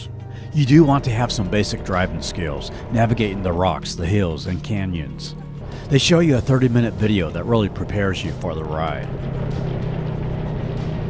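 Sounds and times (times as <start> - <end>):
atv engine droning: 0.0 - 11.0
background music: 0.0 - 11.0.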